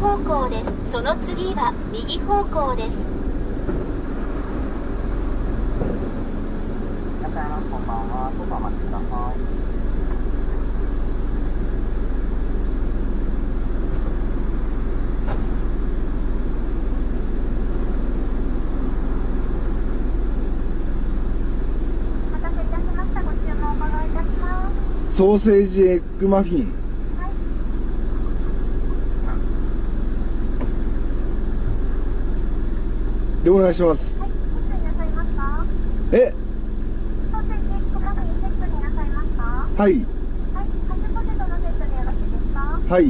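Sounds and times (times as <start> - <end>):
car engine idling: 0.0 - 43.0.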